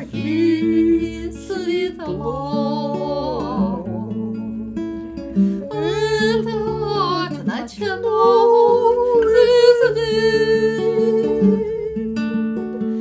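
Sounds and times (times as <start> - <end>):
women singing slow melody: 0.0 - 4.6, 5.6 - 12.2
acoustic guitar: 0.0 - 13.0.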